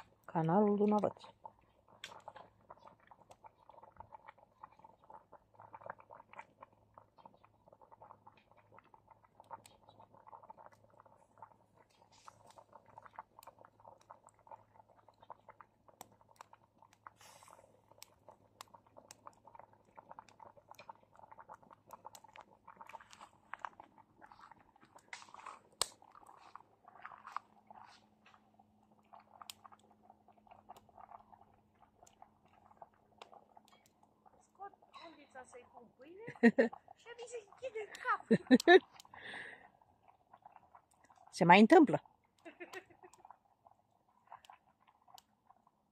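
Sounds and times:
fire pops and snaps: 0.0 - 45.7
fire embers crackling: 0.0 - 45.9.

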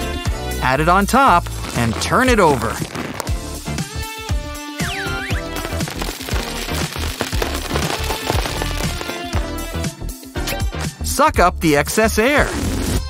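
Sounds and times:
background music: 0.0 - 13.0
small beads rattling into balloon: 5.5 - 9.4.

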